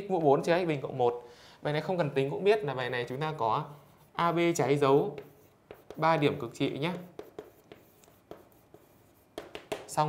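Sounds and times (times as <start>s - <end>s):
chalk scratching on chalkboard: 3.1s - 10.0s.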